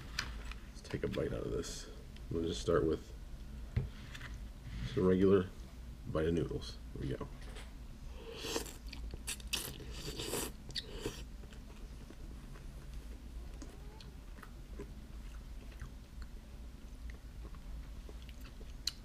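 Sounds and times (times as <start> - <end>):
chewing with mouth clicks: 8.5 - 19.0.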